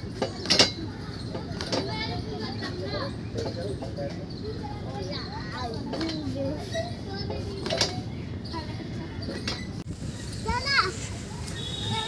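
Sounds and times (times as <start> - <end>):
children's voices and calls: 0.0 - 12.0.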